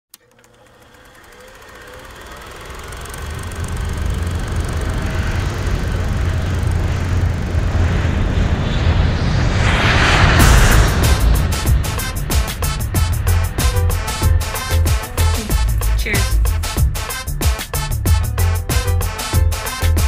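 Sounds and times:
low rumble: 0:03.3 - 0:18.2
music: 0:10.4 - 0:20.0.

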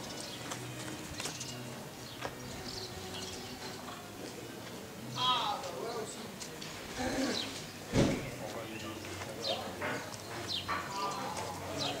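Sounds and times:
people talking: 0:03.6 - 0:12.0.

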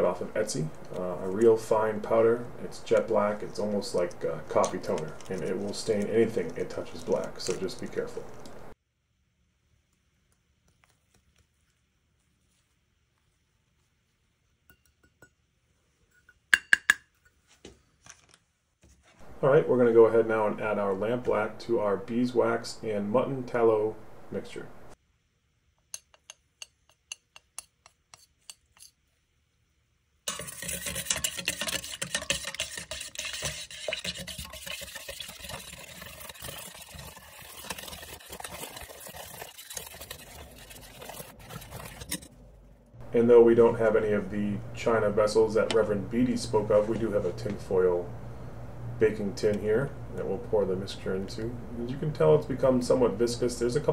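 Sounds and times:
metal cup clinking on ceramic bowl: 0:16.1 - 0:17.1
metal spoon scraping in pot: 0:26.0 - 0:29.0, 0:30.3 - 0:42.4.

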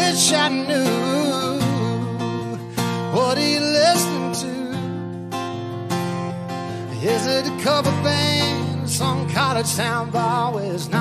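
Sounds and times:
country song: 0:00.0 - 0:11.0
strummed acoustic guitar: 0:00.0 - 0:11.0.

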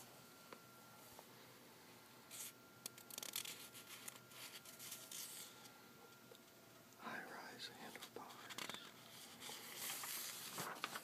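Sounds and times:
soft whispering: 0:07.0 - 0:09.7.

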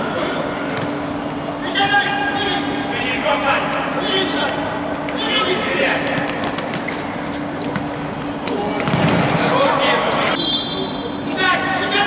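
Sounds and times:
steady low hum: 0:00.0 - 0:12.0
players shouting: 0:01.6 - 0:06.4.

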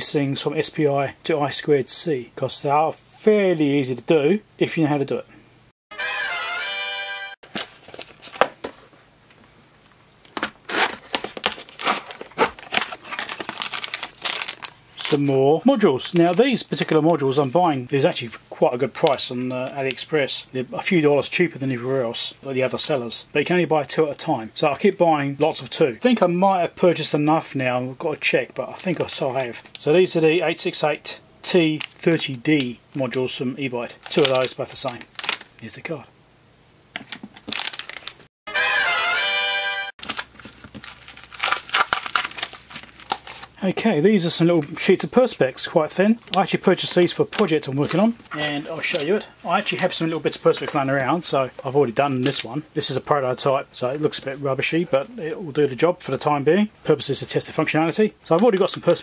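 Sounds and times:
crinkling and tearing of packing: 0:07.4 - 0:08.8, 0:10.2 - 0:15.3, 0:16.0 - 0:17.2, 0:31.8 - 0:32.7, 0:33.9 - 0:35.7, 0:37.1 - 0:38.3, 0:40.0 - 0:43.6
cardboard box being opened: 0:10.4 - 0:14.6.

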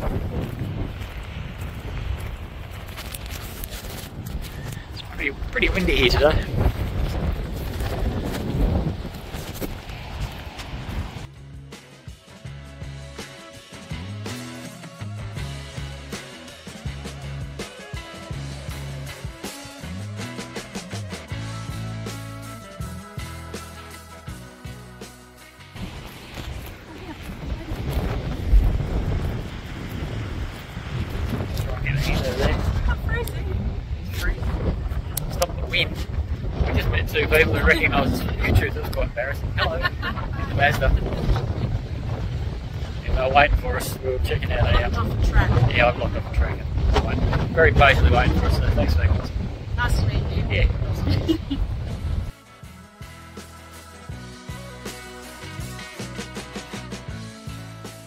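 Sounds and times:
wind buffeting microphone: 0:00.0 - 0:11.3, 0:25.8 - 0:52.3
background music: 0:11.3 - 0:27.1, 0:37.2 - 0:38.7, 0:52.0 - 0:58.0.

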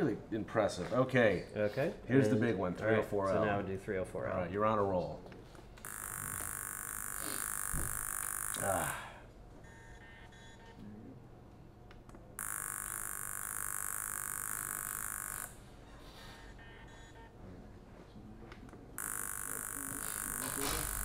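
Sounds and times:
laser analyzer high buzz: 0:05.8 - 0:09.1, 0:12.4 - 0:15.6, 0:19.0 - 0:21.0.

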